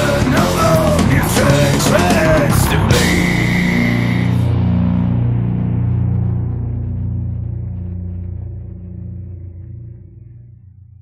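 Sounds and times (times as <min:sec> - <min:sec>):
rock guitar and bass chord ringing: 0:00.0 - 0:11.0.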